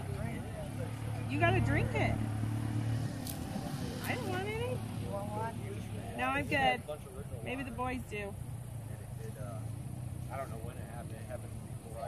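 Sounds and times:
faint conversation: 0.0s - 12.0s
low engine hum: 0.0s - 12.0s.

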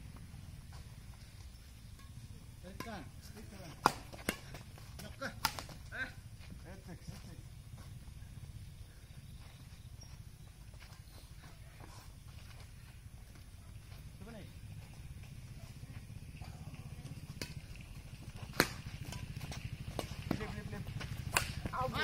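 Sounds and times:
steady low hum: 0.0s - 22.0s
rackets striking shuttlecock: 1.5s - 6.0s, 17.1s - 22.0s
players calling out: 20.0s - 22.0s.

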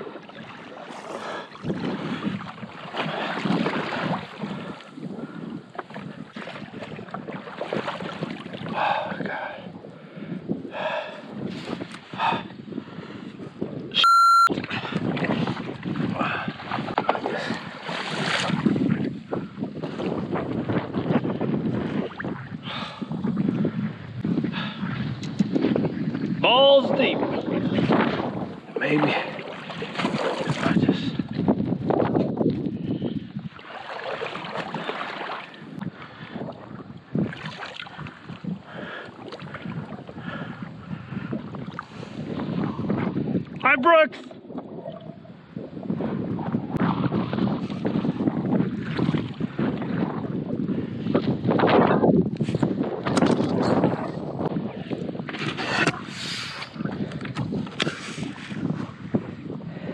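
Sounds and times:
water lapping against kayak hull: 0.0s - 14.0s, 14.6s - 59.9s
wind buffeting microphone: 0.0s - 59.9s
high steady tone: 14.0s - 14.5s.

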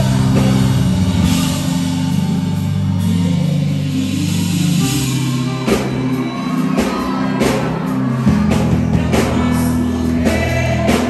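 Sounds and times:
worship band playing low chords: 0.0s - 11.0s.

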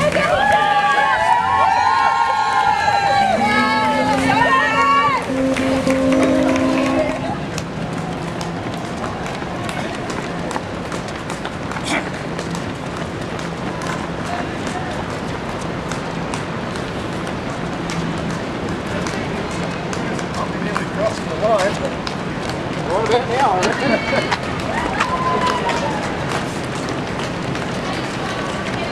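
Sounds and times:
voices rising: 0.0s - 7.6s
crowd and street hubbub: 0.0s - 28.9s
runners' footfalls on asphalt: 0.0s - 28.9s.

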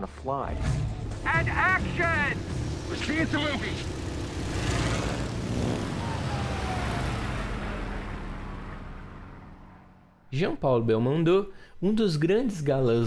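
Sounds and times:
biplane engine and propeller: 0.8s - 9.9s.

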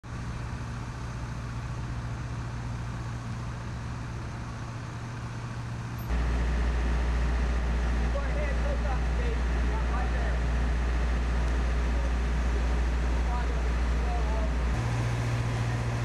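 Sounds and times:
deep steady rumble: 0.0s - 16.0s
diesel truck engine running: 0.1s - 16.0s.

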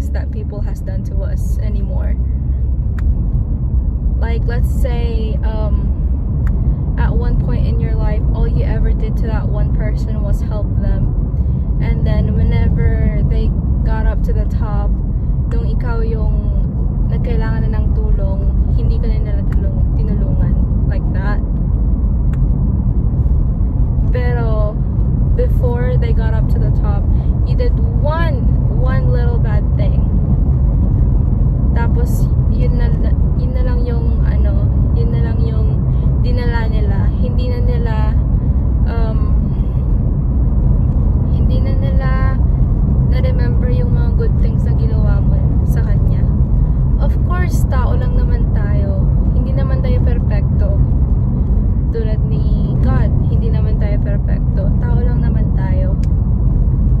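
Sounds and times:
woman talking: 0.0s - 2.2s, 4.2s - 6.0s, 7.0s - 11.1s, 11.8s - 21.4s, 24.2s - 30.1s, 31.7s - 38.2s, 38.8s - 39.7s, 41.3s - 42.4s, 43.1s - 46.4s, 47.0s - 50.9s, 51.9s - 56.0s
car cabin road rumble: 0.0s - 57.0s.

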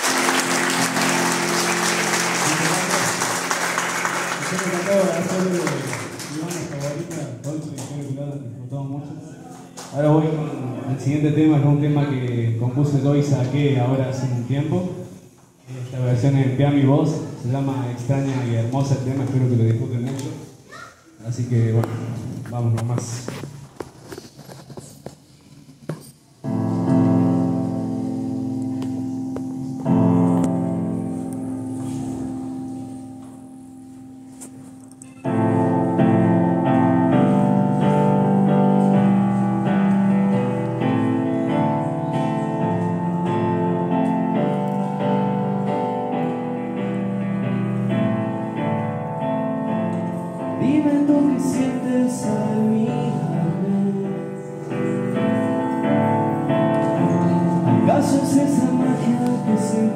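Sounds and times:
digital piano chords: 0.0s - 7.8s, 26.4s - 59.9s.

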